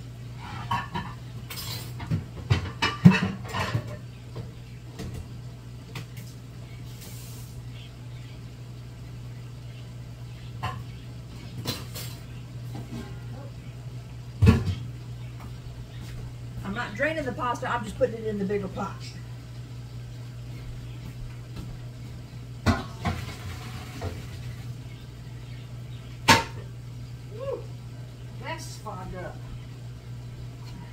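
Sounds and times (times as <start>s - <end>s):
steady low hum: 0.0s - 30.9s
metal pots clattering: 0.4s - 4.1s.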